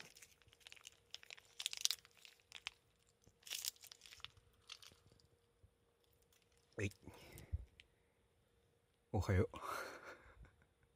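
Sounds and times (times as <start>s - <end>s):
foil wrapper crinkling: 0.0s - 5.4s.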